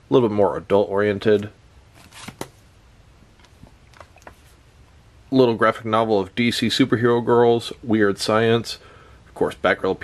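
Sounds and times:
paper rustling: 2.0s - 2.6s.

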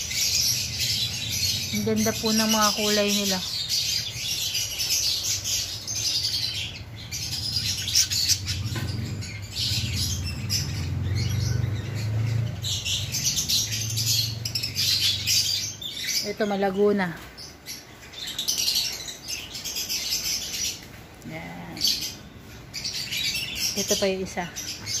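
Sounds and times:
flock of birds chirping: 0.0s - 25.0s.

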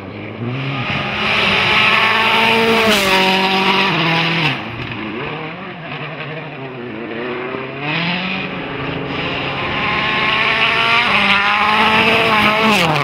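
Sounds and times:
rally car engine at high revs: 0.0s - 13.0s.

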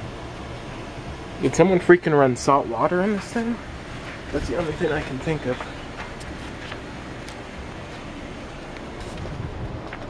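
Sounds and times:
wind rumbling on microphone: 3.4s - 10.0s.

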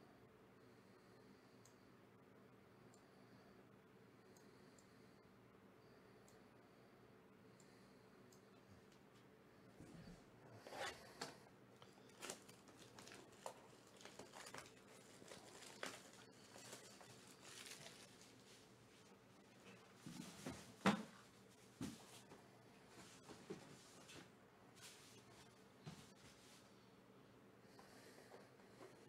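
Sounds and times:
plastic shrink-wrap crinkling: 12.1s - 19.1s.

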